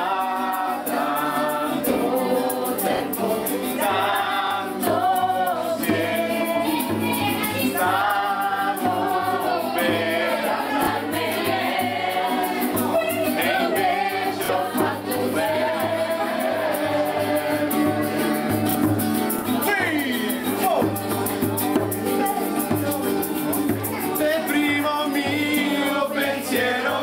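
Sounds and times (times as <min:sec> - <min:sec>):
group of people singing: 0:00.0 - 0:27.0.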